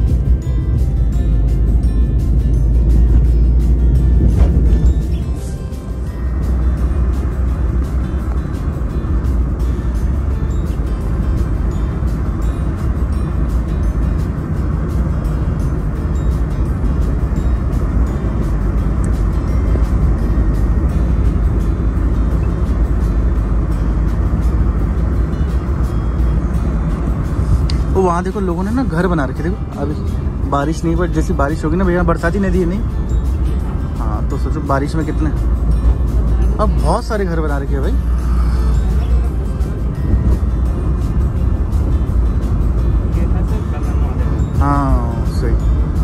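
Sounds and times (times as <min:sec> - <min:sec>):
car road and engine rumble: 0:00.0 - 0:46.0
music playing: 0:00.0 - 0:46.0.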